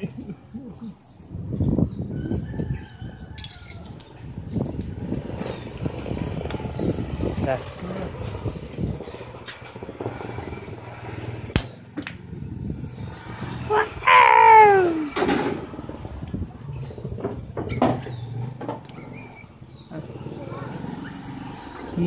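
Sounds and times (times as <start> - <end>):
street noise: 0.0 - 22.0.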